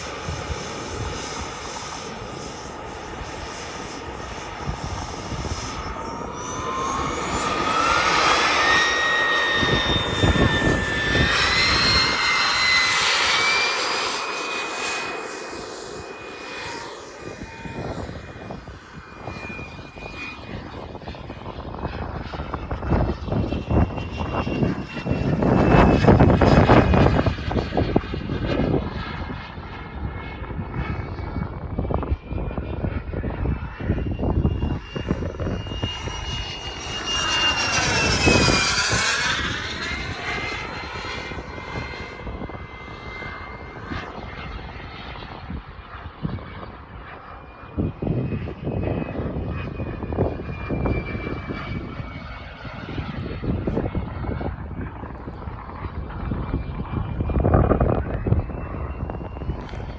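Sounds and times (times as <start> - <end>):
jet roar: 0.0 - 59.9
jet turbine whine: 0.0 - 59.9.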